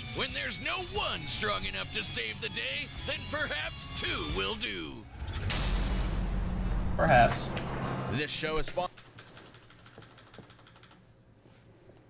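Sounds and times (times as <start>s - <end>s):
rapid computer clicks: 8.8s - 11.1s.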